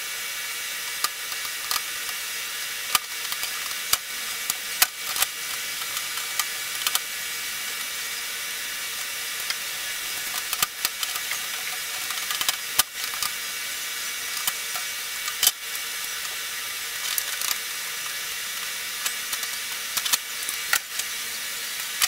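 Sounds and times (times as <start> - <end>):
steady background hiss: 0.0 - 22.0
plastic parts clicking and rattling: 0.9 - 2.2, 2.9 - 8.2, 8.8 - 22.0.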